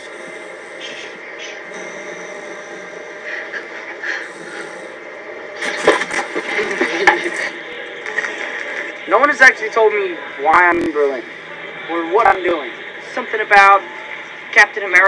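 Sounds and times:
jet cabin drone: 0.0 - 15.0.

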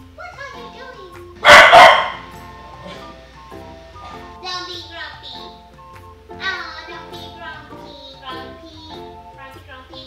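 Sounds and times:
quiet background music: 0.0 - 10.0
dog barking: 1.4 - 2.3.

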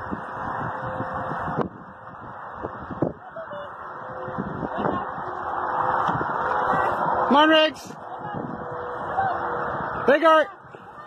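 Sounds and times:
steady rushing wind noise: 0.0 - 11.0.

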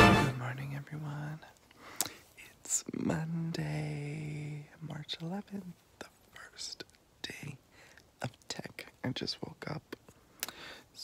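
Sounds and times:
man whispering: 0.4 - 1.6, 2.3 - 10.1
breathing: 1.7 - 2.3, 7.7 - 8.1, 10.3 - 11.0.

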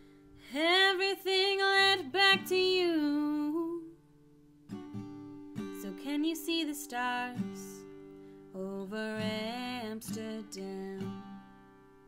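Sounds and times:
acoustic guitar: 0.0 - 12.0
woman singing: 0.4 - 4.0, 5.6 - 7.9, 8.5 - 11.6.

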